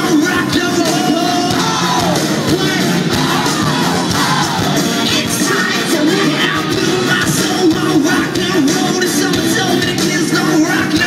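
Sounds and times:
crowd cheering: 0.0 - 8.7
live rock band: 0.0 - 11.0
person singing: 0.0 - 11.0.

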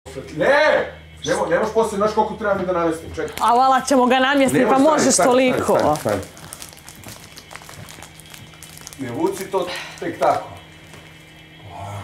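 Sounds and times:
soft rustling and handling: 5.2 - 11.4.

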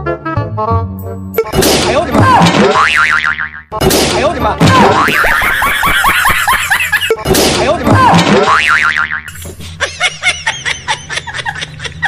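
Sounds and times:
cartoon springy boings: 4.6 - 6.0.

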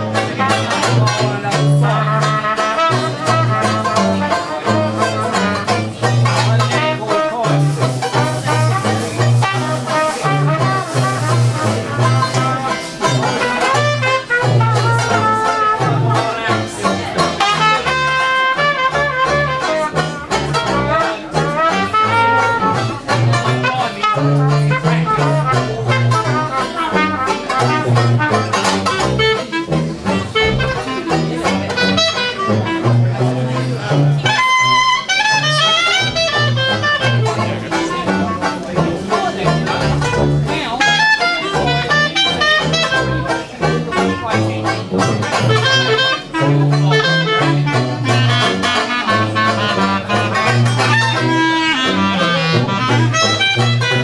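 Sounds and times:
clarinet lead: 0.0 - 54.0
jazz band playing: 0.0 - 54.0
sousaphone bass line: 0.0 - 54.0
strummed banjo: 0.0 - 54.0.

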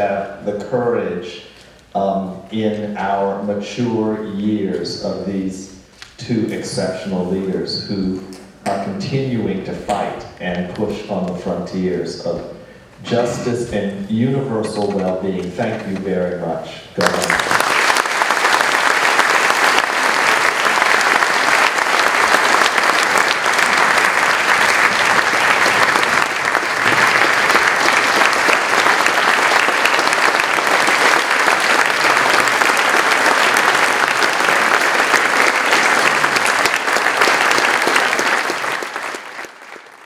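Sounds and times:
audience applauding: 17.0 - 40.0.

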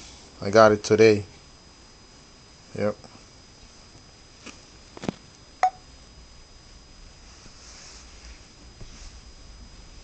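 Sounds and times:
short phone beep: 5.6 - 5.8.

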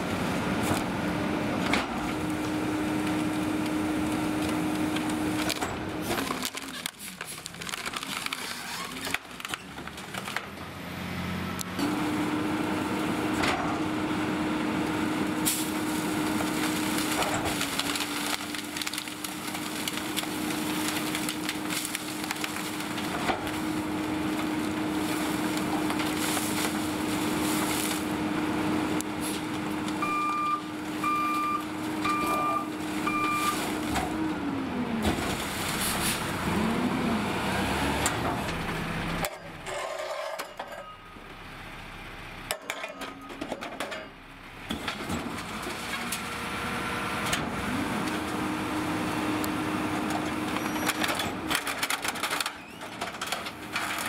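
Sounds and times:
garbage truck engine running: 0.0 - 54.0
hydraulics working: 0.1 - 43.2
cracking and knocking of waste: 16.2 - 28.1
short beeps: 30.0 - 33.6.

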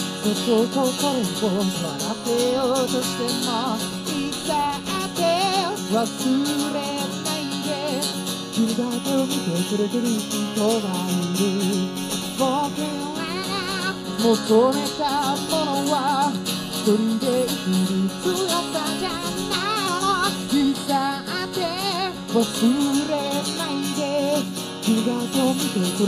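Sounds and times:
man singing with vibrato: 0.0 - 26.0
strummed acoustic guitar: 0.0 - 26.0.

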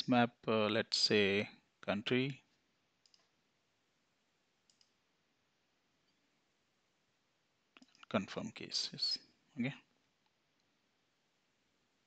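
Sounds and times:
computer mouse clicks: 3.0 - 3.3, 4.6 - 5.0, 7.8 - 8.1.

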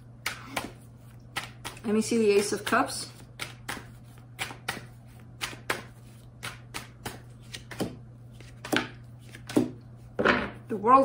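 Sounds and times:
cards being shuffled: 0.3 - 9.7.

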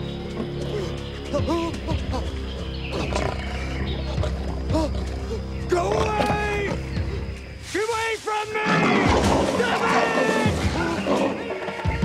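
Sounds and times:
dramatic music score: 0.0 - 12.0
lion growling: 0.4 - 6.9, 8.6 - 11.8.

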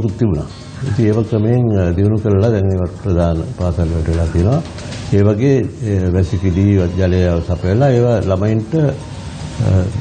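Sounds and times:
man speaking in a low voice: 0.0 - 10.0.

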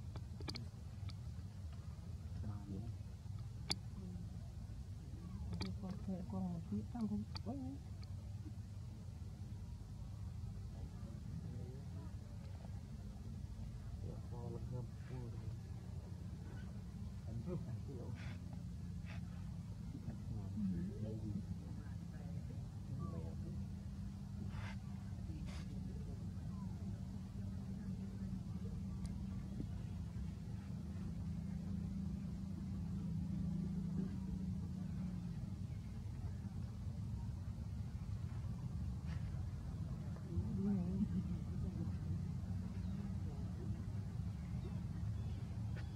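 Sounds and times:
low motor hum: 0.0 - 45.9
steady low rumble: 0.0 - 45.9
man talking: 14.0 - 15.7, 17.3 - 18.4.

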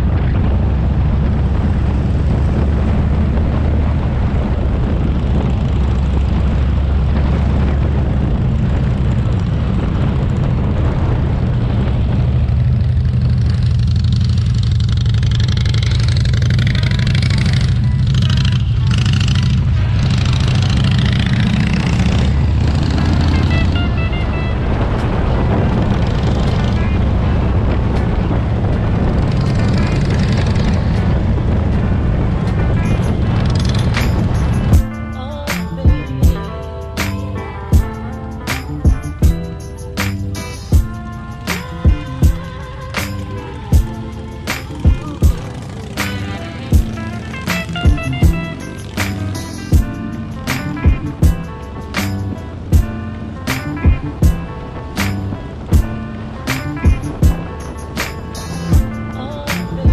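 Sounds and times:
motorcycle low rumble: 0.0 - 59.9
wind noise on microphone: 0.0 - 59.9.

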